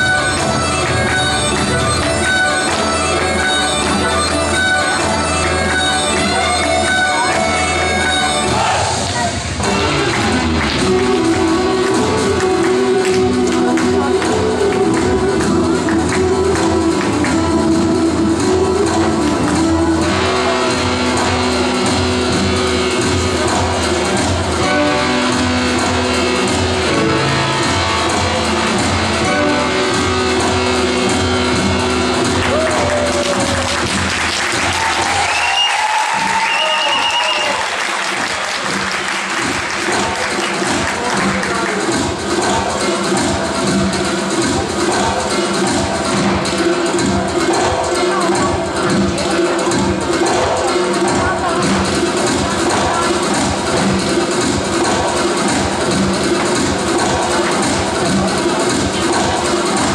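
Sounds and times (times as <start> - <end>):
folk dance music with held tones: 0.0 - 59.9
audience applause: 32.3 - 42.2.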